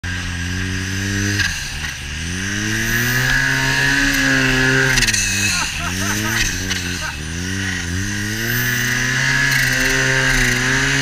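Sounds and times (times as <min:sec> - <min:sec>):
snowmobile engine revving: 0:00.0 - 0:11.0.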